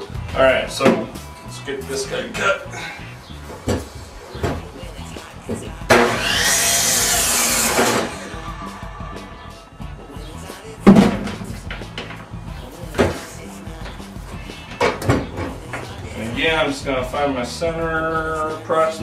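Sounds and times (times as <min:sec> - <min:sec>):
power saw cutting log: 0:05.5 - 0:09.5.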